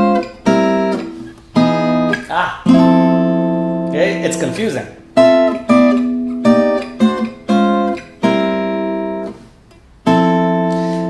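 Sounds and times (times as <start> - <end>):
fingerstyle acoustic guitar chords: 0.0 - 11.0.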